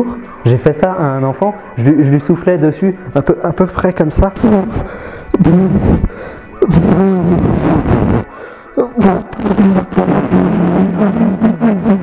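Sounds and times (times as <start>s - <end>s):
breath hitting microphone: 4.7s - 6.6s, 8.3s - 8.8s
man vocalising breath: 4.7s - 12.0s.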